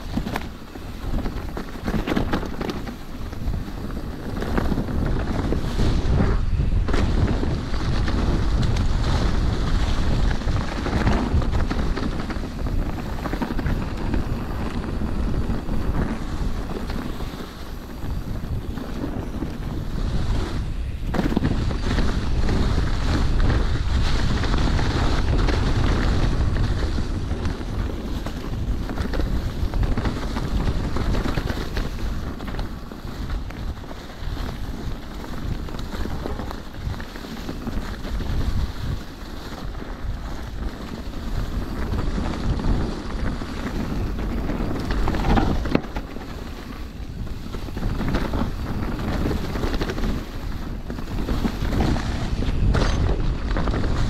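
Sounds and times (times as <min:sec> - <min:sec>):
bike knocking over bumps: 0:00.0 - 0:05.6, 0:41.6 - 0:54.0
tyres rolling over dry leaves: 0:00.0 - 0:54.0
wind buffeting microphone: 0:00.0 - 0:54.0.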